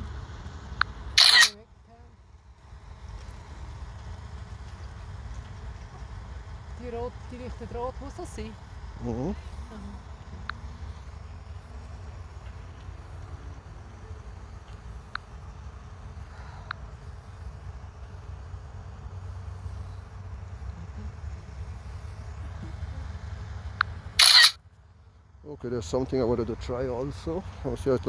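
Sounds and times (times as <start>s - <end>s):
low outdoor rumble: 0.0s - 28.0s
faint ticks: 10.4s - 10.9s, 14.5s - 15.4s, 16.6s - 17.0s.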